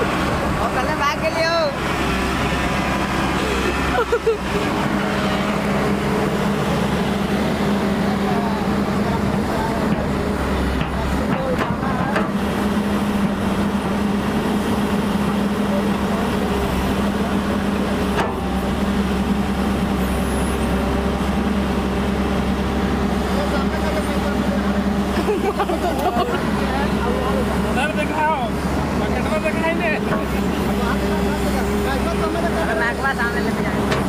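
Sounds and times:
excavator diesel engine running: 0.0 - 34.0.

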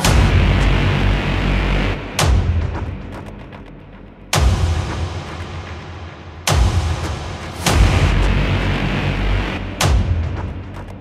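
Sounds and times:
loud booming hit: 0.0 - 2.9
deep bass line: 0.0 - 5.0, 6.5 - 11.0
tech house music: 0.0 - 5.8, 6.5 - 11.0.

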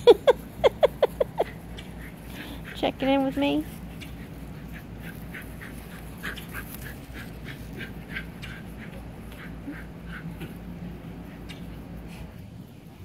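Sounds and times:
low background hum: 0.0 - 13.0.

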